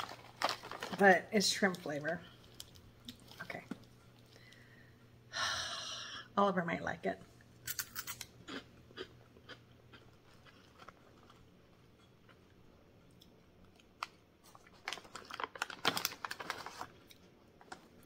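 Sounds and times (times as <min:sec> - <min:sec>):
person chewing crunchy snack: 0:07.7 - 0:12.0.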